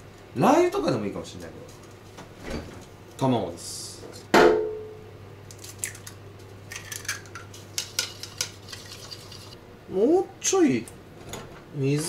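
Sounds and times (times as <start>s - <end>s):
steady low hum: 0.0s - 12.0s
egg being beaten in a bowl: 7.7s - 9.6s.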